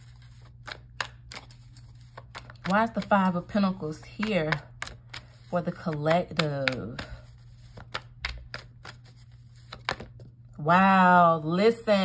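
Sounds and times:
low steady hum: 0.0 - 12.0
cards clicking in hand: 0.2 - 10.2.

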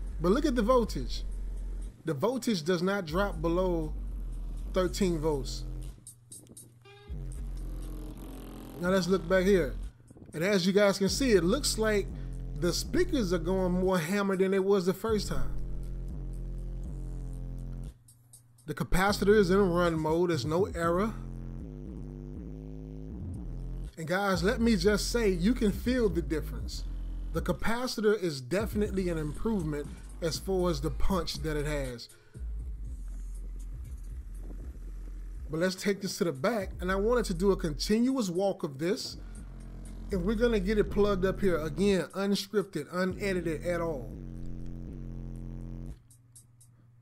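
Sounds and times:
bass-heavy song through car subwoofers: 0.0 - 2.0, 3.1 - 10.3, 11.1 - 13.9, 15.1 - 18.0, 19.1 - 27.8, 28.6 - 35.7, 36.6 - 38.0, 39.1 - 42.0, 43.1 - 46.0.

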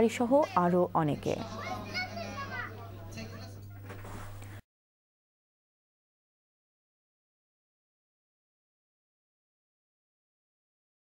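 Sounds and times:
background chatter: 0.0 - 4.6.

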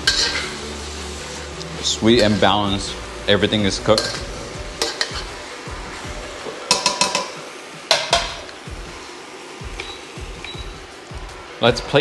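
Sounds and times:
metal ladle clinking on wok: 0.0 - 0.5, 3.9 - 5.3, 6.7 - 8.4.

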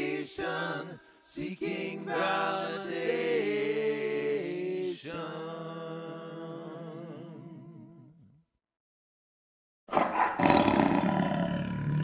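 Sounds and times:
tiger roar: 9.9 - 12.0.

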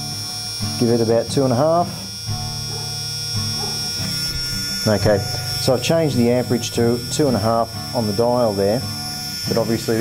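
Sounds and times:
electric motor whining: 0.0 - 10.0.

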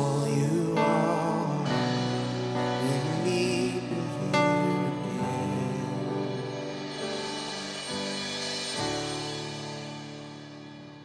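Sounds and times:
cymbal rolled with mallets: 2.0 - 10.9.

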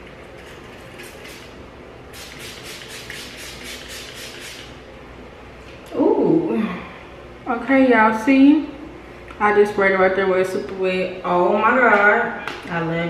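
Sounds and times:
pump spray bottle hissing: 2.1 - 4.7.

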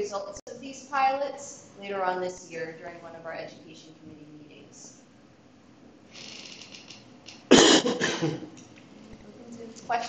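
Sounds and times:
person coughing: 7.5 - 8.6.

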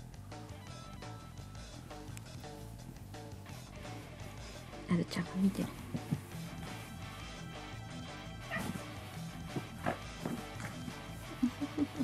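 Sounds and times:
background music: 0.0 - 12.0
cat cry: 8.5 - 8.8.

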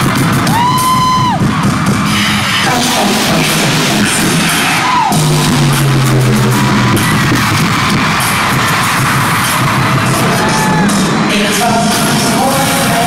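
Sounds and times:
live pop music over sound system: 0.0 - 13.0.

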